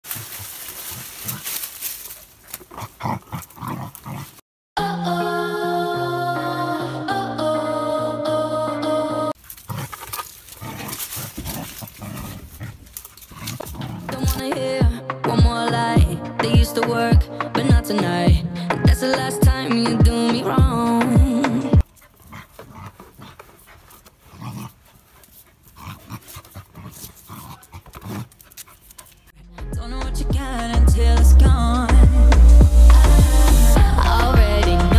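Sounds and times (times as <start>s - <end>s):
dry leaves rustling and crackling: 0.0s - 4.4s, 9.4s - 14.4s
dog grunting and snuffling: 0.1s - 4.4s, 9.4s - 14.4s, 21.8s - 29.3s
dog breathing hard and snuffling: 21.8s - 29.3s.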